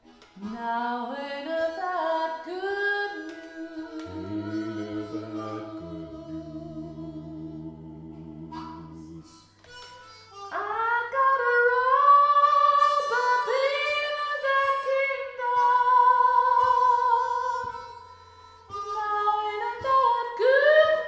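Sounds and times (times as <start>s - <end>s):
harmonica playing chords: 1.5s - 21.0s.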